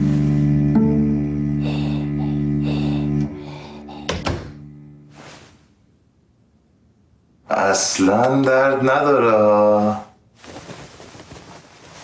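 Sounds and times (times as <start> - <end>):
low musical chord: 0.0 - 4.0, 4.6 - 5.2.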